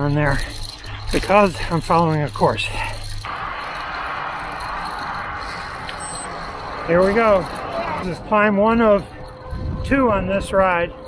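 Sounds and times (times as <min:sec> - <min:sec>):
short high beep: 0:05.5 - 0:06.4.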